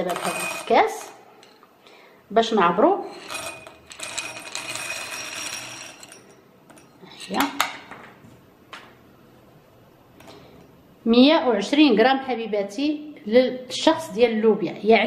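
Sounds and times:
dried beans rattling into glass: 0:00.0 - 0:01.6, 0:03.1 - 0:07.5
woman's voice: 0:02.3 - 0:03.1, 0:07.2 - 0:07.6, 0:11.1 - 0:15.0.

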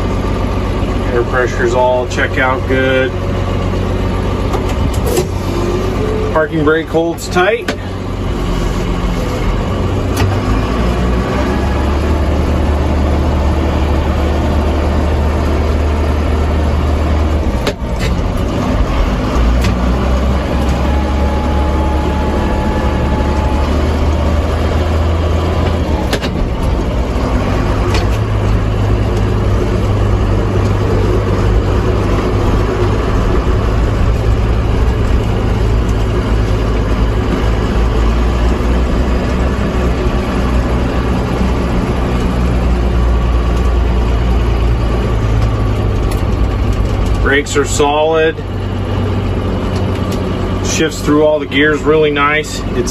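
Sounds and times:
tractor diesel engine running: 0:00.0 - 0:52.9.

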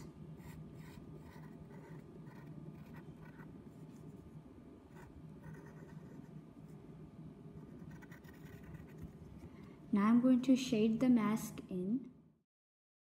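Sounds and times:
low steady hum: 0:00.0 - 0:12.4
pencil scratching on paper: 0:00.4 - 0:04.2, 0:04.9 - 0:06.3, 0:07.6 - 0:09.2.

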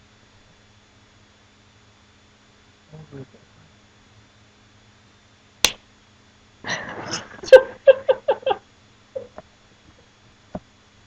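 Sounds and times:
hand slapping bare scalp: 0:05.6 - 0:05.8.

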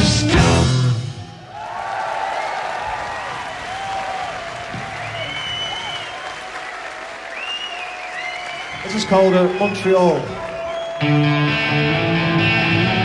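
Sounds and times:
crowd applauding: 0:01.5 - 0:13.0.

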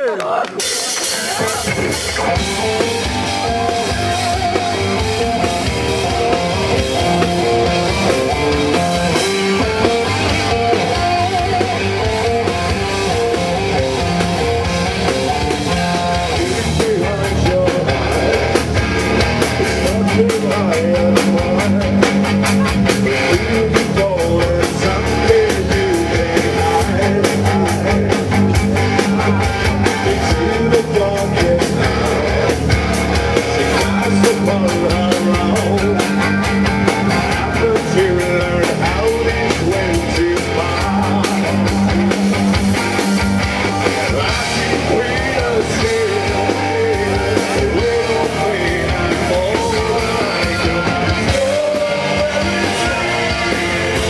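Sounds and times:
person singing: 0:00.0 - 0:42.3, 0:43.9 - 0:54.0
electric guitar: 0:00.0 - 0:54.0
drum kit: 0:00.1 - 0:54.0.

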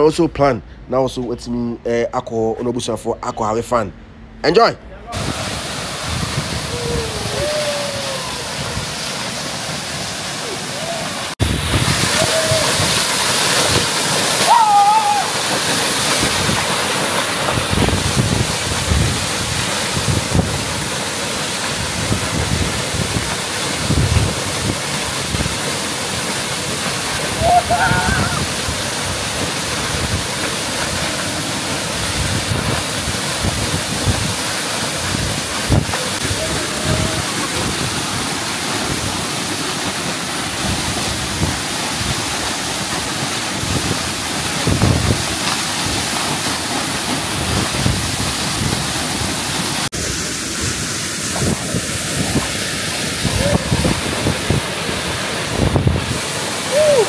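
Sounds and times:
waterfall pouring into pool: 0:05.1 - 0:57.0.

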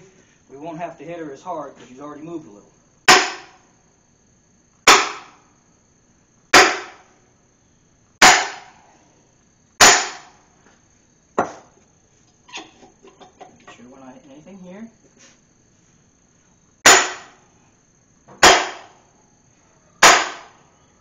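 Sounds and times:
sledgehammer striking metal: 0:03.1 - 0:03.6, 0:04.9 - 0:05.3, 0:06.6 - 0:07.1, 0:08.2 - 0:08.8, 0:09.8 - 0:10.4, 0:16.8 - 0:17.4, 0:18.4 - 0:18.9, 0:20.0 - 0:20.6.

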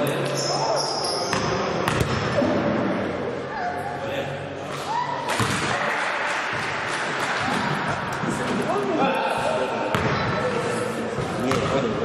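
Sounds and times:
players' voices: 0:00.0 - 0:12.0
sneaker squeaks on court floor: 0:00.2 - 0:02.1
basketball hitting hard: 0:01.3 - 0:02.6, 0:05.3 - 0:05.8, 0:09.9 - 0:10.4.

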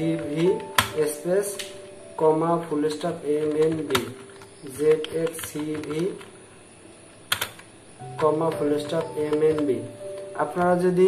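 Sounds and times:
keyboard key clicks: 0:00.4 - 0:01.0, 0:03.4 - 0:06.3, 0:07.3 - 0:10.8.

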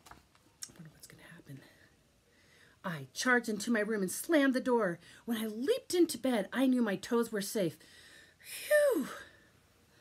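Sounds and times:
woman whispering: 0:00.6 - 0:01.9
woman reading aloud: 0:02.8 - 0:07.8.

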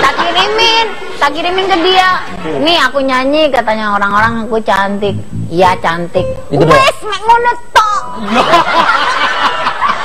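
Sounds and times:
people laughing: 0:08.2 - 0:10.0.

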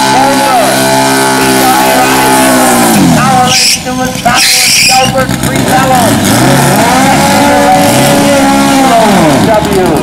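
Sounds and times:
car engine revving: 0:00.0 - 0:10.0.

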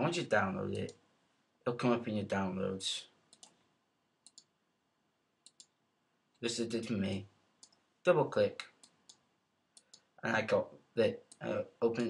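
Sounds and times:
computer mouse clicks: 0:03.3 - 0:03.6, 0:04.2 - 0:04.5, 0:05.4 - 0:05.8, 0:08.8 - 0:09.2, 0:09.8 - 0:10.1.

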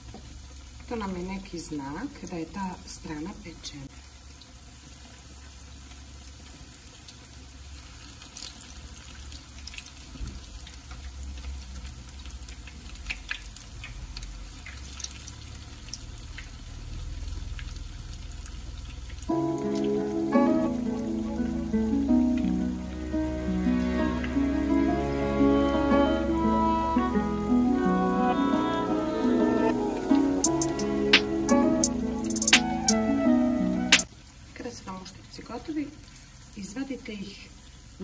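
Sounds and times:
fritters sizzling in hot oil: 0:00.0 - 0:33.2, 0:33.8 - 0:38.0
background music: 0:19.3 - 0:34.1.

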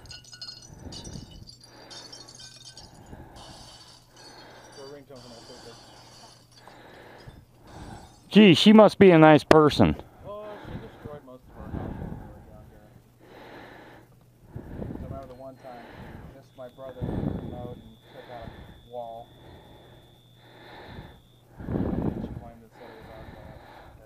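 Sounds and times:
quiet indistinct conversation: 0:04.8 - 0:20.0, 0:20.9 - 0:24.0.

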